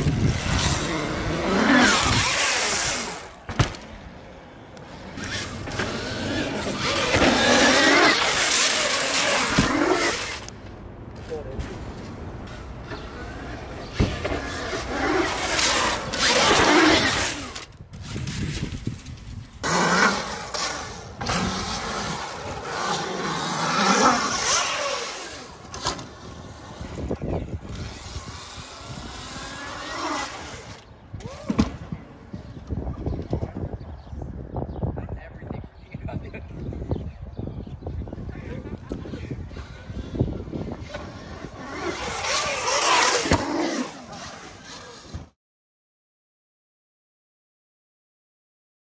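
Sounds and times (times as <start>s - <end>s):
dirt bike engine revving: 0.0s - 3.4s, 4.9s - 10.5s, 12.5s - 17.6s, 19.6s - 30.9s, 40.7s - 45.4s
sharp thud: 3.5s - 3.9s.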